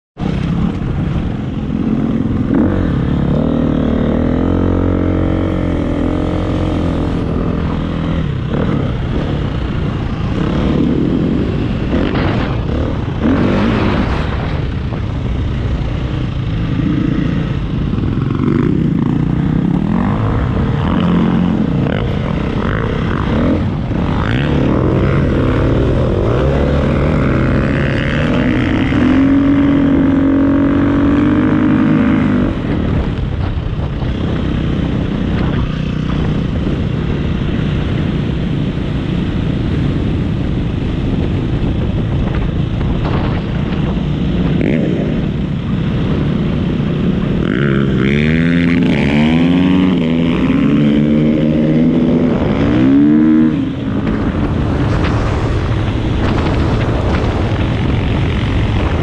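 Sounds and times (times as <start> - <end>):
dirt bike engine revving: 0.2 - 38.5, 41.1 - 59.0.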